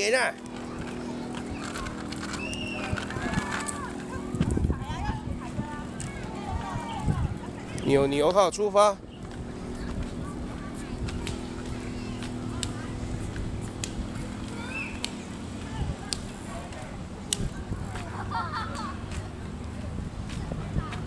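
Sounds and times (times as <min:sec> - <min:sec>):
bicycle rolling on pavement: 0:00.0 - 0:21.0.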